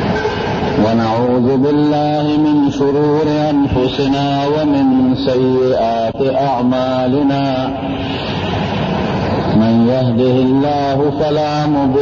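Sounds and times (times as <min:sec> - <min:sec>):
man chanting: 0:00.8 - 0:08.2, 0:09.5 - 0:12.0
loud even rushing noise: 0:07.2 - 0:10.7.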